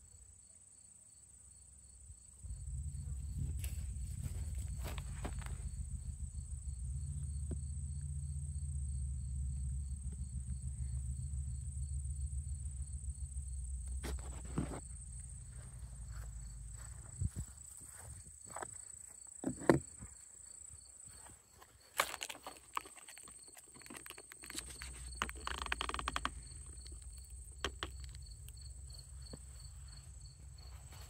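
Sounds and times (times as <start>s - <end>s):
crickets chirping: 0.0s - 31.0s
low rumble: 2.4s - 18.2s
footsteps in grass: 3.2s - 5.7s, 15.3s - 19.2s, 21.1s - 25.5s, 28.9s - 31.0s.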